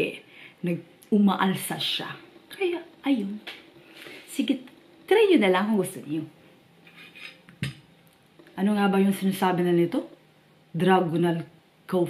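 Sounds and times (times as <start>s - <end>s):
person speaking: 0.0s - 6.4s.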